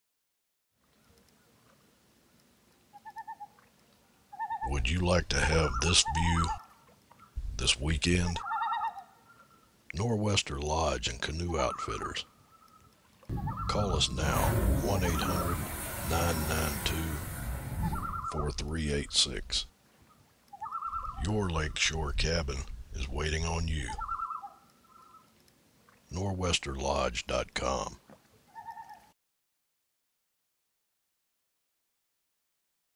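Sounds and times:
thin whistled bird call: 2.9 - 3.5, 11.6 - 13.8, 17.8 - 18.4, 20.1 - 21.2, 24.0 - 25.3, 28.5 - 29.0
loon tremolo call: 13.3 - 18.4.

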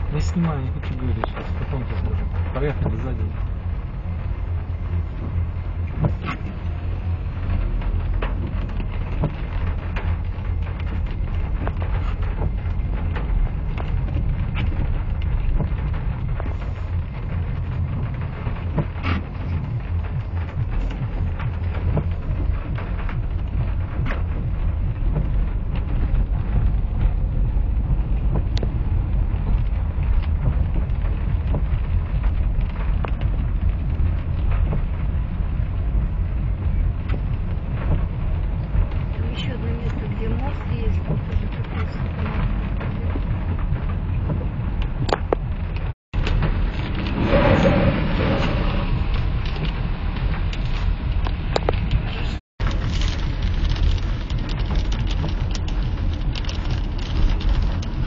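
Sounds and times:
car driving through water: 0.0 - 58.0
rain ticking on car: 0.0 - 58.0.

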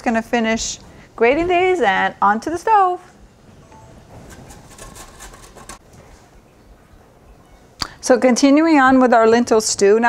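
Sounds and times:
carrot scraping on grater: 4.2 - 5.8.

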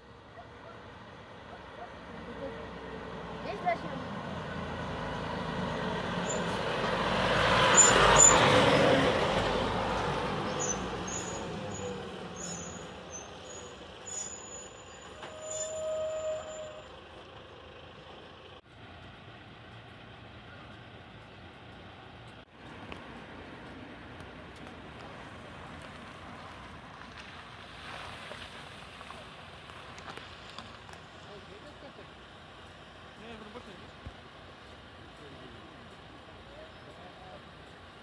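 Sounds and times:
diesel truck engine driving past: 0.0 - 22.3
brake squeal: 6.0 - 9.1, 9.9 - 18.6, 35.1 - 37.8.

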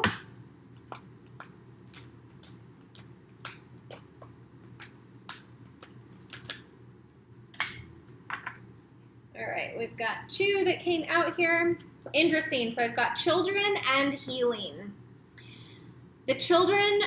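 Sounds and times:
low room hum: 0.0 - 17.0
cards being shuffled: 0.8 - 6.7.

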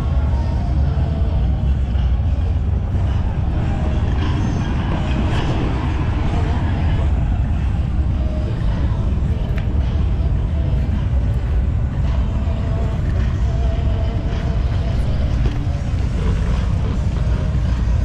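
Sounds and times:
motorcycle engines rumbling: 0.0 - 18.0.

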